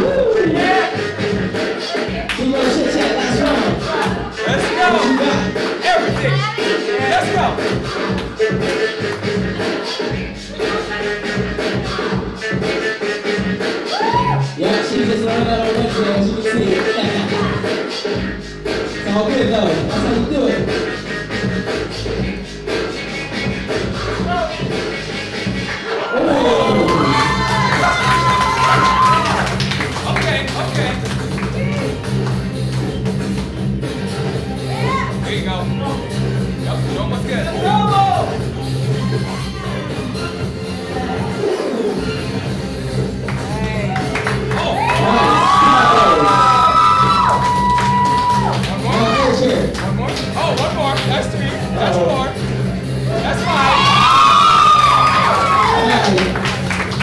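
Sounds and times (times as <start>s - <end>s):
hip-hop breakbeat music: 0.0s - 57.0s
crowd cheering and whooping: 13.8s - 14.6s, 25.9s - 29.7s, 43.8s - 49.3s, 53.1s - 57.0s.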